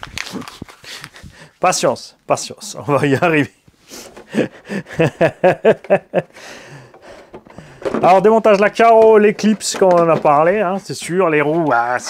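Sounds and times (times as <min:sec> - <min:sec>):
man laughing: 0:04.2 - 0:06.4
breathy exhale: 0:06.3 - 0:07.9.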